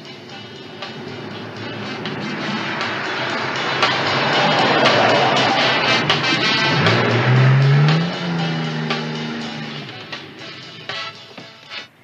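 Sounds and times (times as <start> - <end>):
car engine revving: 0.0 - 11.5
music score: 0.0 - 11.6.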